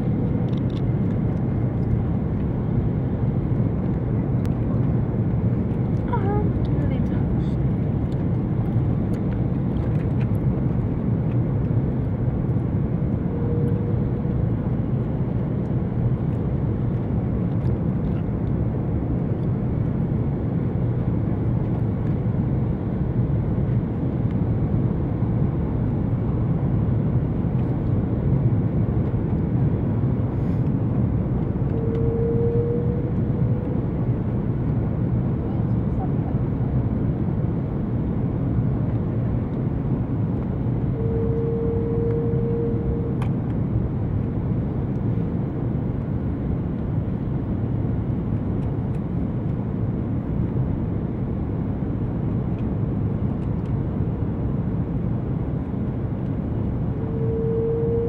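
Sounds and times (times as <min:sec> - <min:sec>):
airliner cabin engine roar: 0:00.0 - 0:58.0
faint short steady tone: 0:31.7 - 0:33.6, 0:40.9 - 0:43.2, 0:57.0 - 0:58.0.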